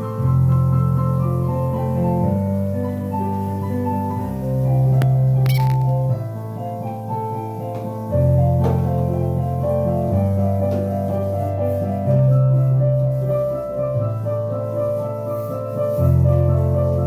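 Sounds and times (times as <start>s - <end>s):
piano playing: 0.0s - 17.0s.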